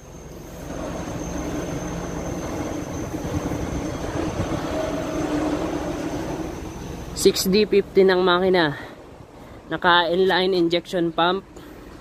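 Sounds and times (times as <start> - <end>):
vehicle engine rumble: 0.0 - 12.0.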